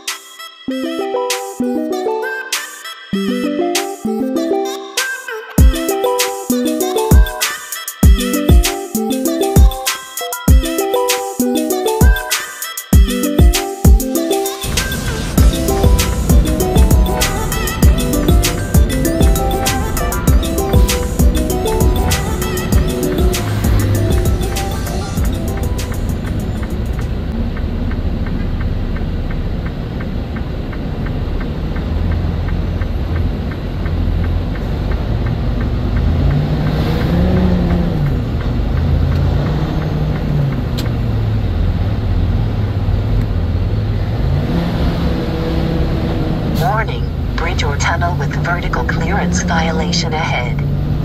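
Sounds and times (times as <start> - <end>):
background music: 0.0 - 29.4, 44.2 - 50.7
diesel truck engine running: 14.6 - 51.0.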